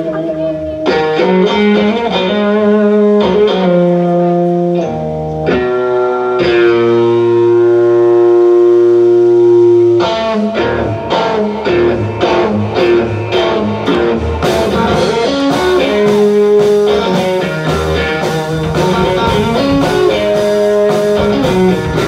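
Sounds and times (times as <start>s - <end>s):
electric guitar lead: 0.0s - 22.0s
live rock band: 0.0s - 22.0s.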